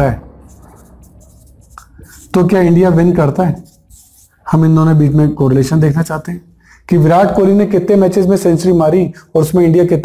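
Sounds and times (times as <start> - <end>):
marker scratching on whiteboard: 0.0 - 5.0.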